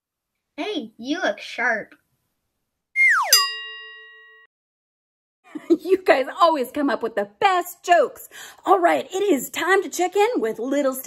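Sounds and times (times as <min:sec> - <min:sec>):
tone sliding down in pitch: 0:03.0 - 0:04.0
bright bell ding: 0:03.3 - 0:04.5.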